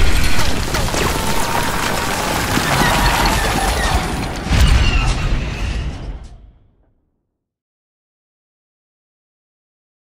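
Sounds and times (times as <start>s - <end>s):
blaster fire: 0.0s - 6.5s
explosions: 0.0s - 6.8s.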